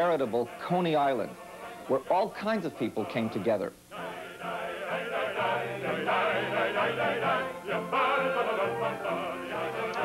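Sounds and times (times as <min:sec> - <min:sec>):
voices singing with music: 0:00.0 - 0:10.0.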